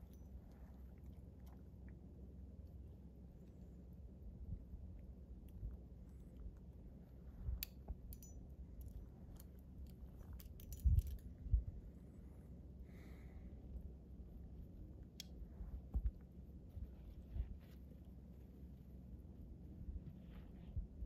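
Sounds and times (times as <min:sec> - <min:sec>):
metal climbing hardware clinking: 0:07.6 - 0:11.5.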